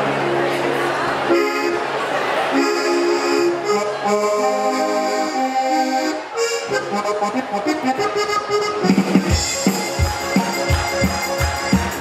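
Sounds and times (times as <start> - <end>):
button accordion playing: 1.2 - 12.0.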